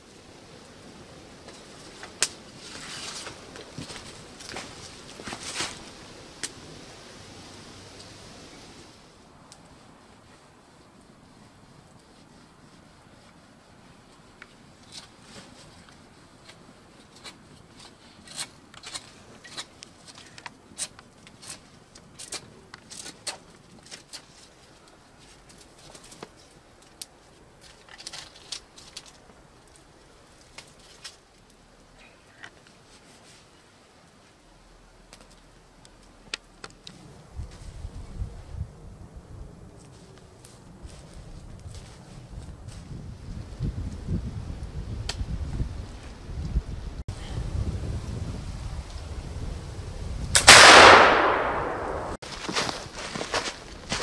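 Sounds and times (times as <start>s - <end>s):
campfire crackling and popping: 0.0s - 47.0s, 47.8s - 54.0s
soft steady hiss: 0.0s - 54.0s.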